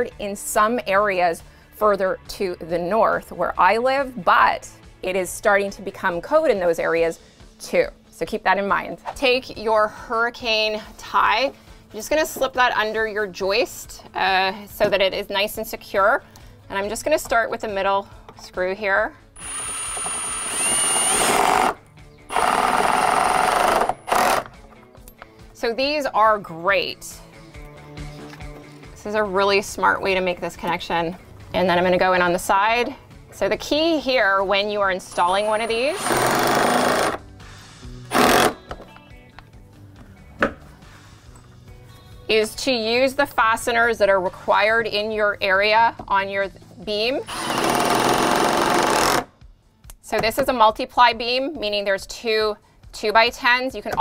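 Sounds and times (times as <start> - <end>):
impact driver hammering screws: 19.4 - 24.6, 35.3 - 37.2, 38.1 - 38.8, 47.3 - 49.3.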